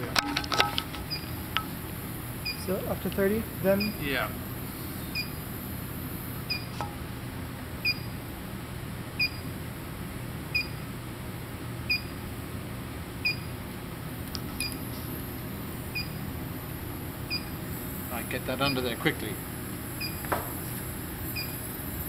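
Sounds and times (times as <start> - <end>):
steady low hum: 0.0 - 22.0
short electronic beeps: 3.8 - 4.0, 5.1 - 5.3, 6.5 - 6.7, 7.8 - 8.1, 20.0 - 20.2, 21.4 - 21.6.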